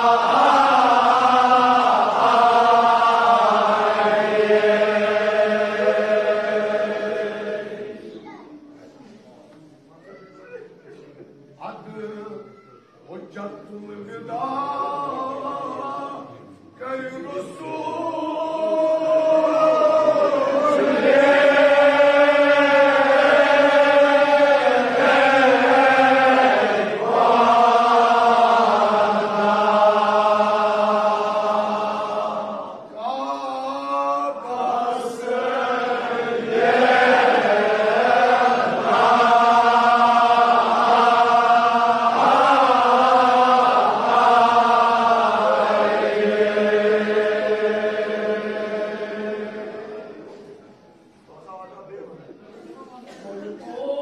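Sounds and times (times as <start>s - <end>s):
men chanting in unison: 0.0s - 7.9s.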